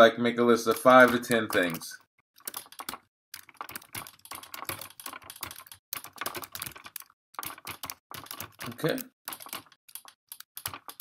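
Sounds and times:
typing on a keyboard: 0:00.7 - 0:11.0.

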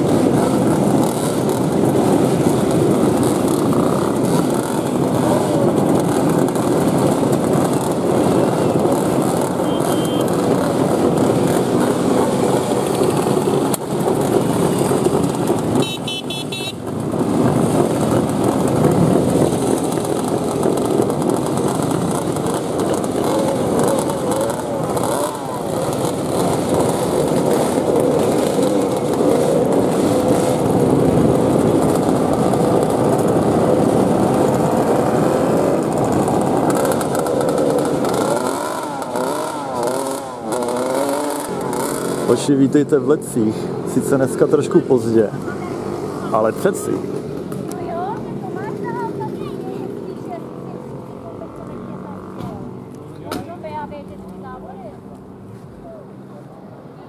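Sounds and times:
motorcycles riding past: 0:00.0 - 0:57.0.

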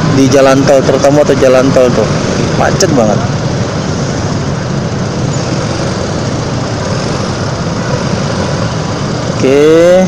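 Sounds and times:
motorcycles and scooters in traffic jam: 0:00.0 - 0:10.0.

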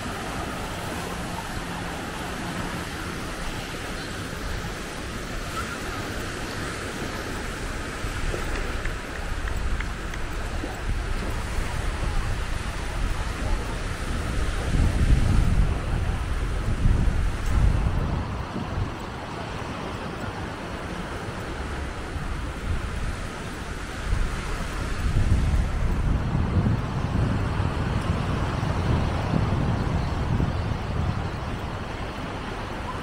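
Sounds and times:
small waves breaking on shore: 0:00.0 - 0:33.0
wind buffeting microphone: 0:00.0 - 0:33.0.

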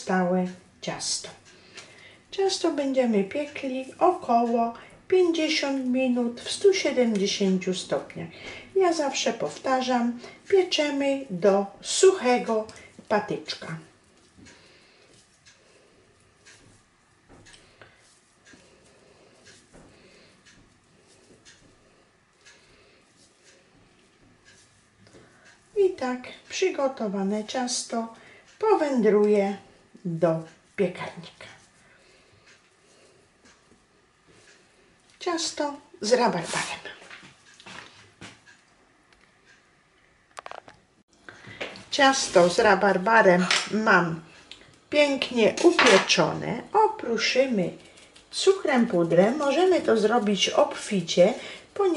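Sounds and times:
soft rustles of dough: 0:00.0 - 0:51.9.

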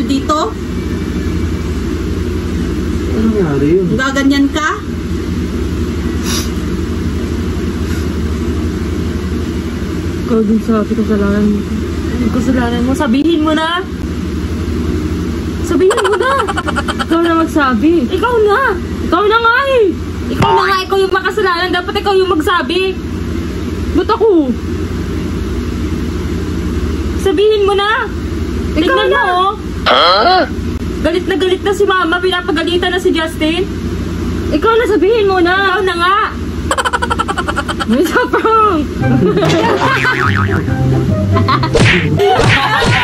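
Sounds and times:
low mechanical hum: 0:00.0 - 0:43.0.

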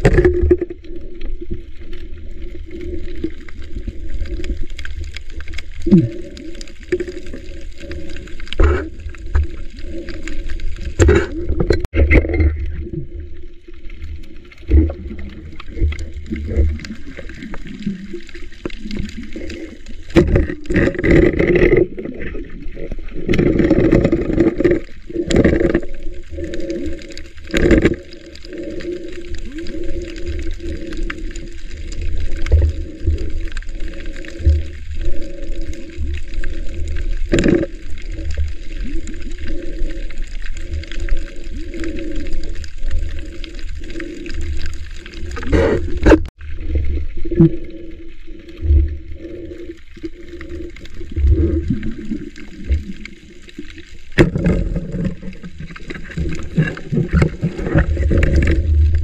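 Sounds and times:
knocks underwater: 0:00.0 - 0:00.8, 0:54.2 - 0:55.3
low underwater hum: 0:00.0 - 0:59.0
water gurgling underwater: 0:00.0 - 0:59.0.

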